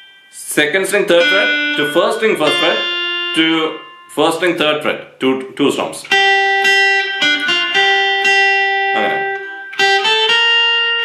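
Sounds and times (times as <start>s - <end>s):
acoustic guitar melody: 0.0s - 5.2s, 5.9s - 11.0s.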